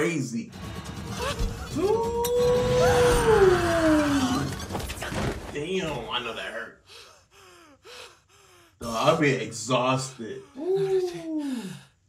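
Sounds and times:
man panting heavily: 6.8s - 12.0s.

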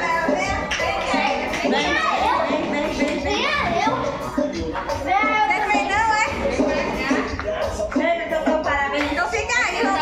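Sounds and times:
high-pitched swooping voices: 0.0s - 8.6s
people talking and calling out: 0.0s - 10.0s.

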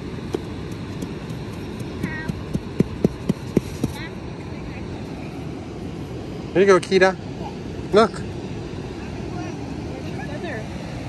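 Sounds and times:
wind: 0.0s - 11.0s.

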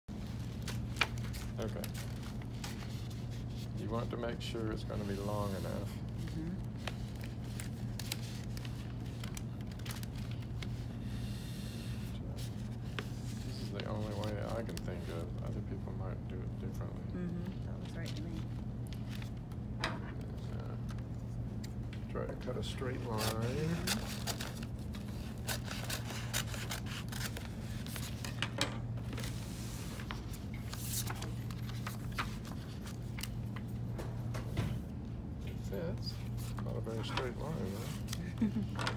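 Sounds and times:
low room hum: 0.1s - 38.9s
paper and plastic rustling: 0.2s - 11.1s, 11.9s - 15.8s, 17.7s - 19.6s, 22.4s - 34.9s, 35.9s - 38.9s.

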